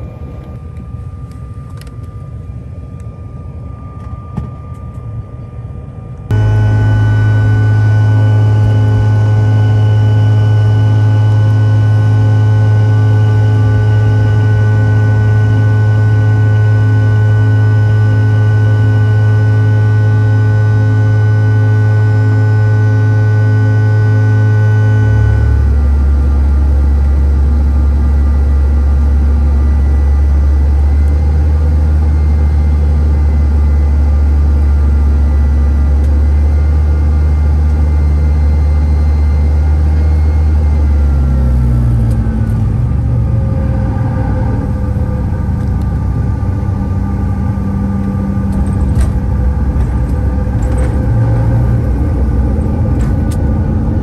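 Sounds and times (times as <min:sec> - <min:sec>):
jet engine whine: 0:00.0 - 0:54.0
jet engines droning: 0:00.0 - 0:54.0.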